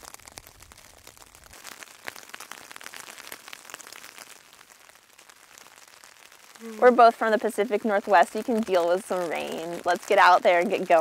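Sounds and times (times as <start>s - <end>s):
light rain on a tent: 0.0s - 11.0s.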